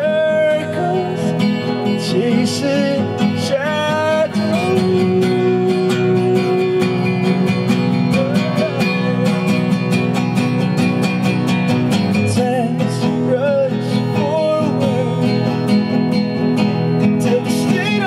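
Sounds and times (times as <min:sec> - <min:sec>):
person singing: 0:00.0 - 0:09.9, 0:12.2 - 0:15.7, 0:17.2 - 0:18.0
acoustic guitars strumming: 0:00.0 - 0:18.0.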